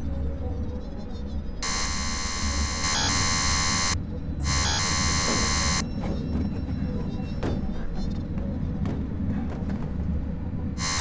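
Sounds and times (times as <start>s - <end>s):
electric shaver buzzing: 1.6s - 5.8s, 10.8s - 11.0s
low steady drone: 1.6s - 5.8s.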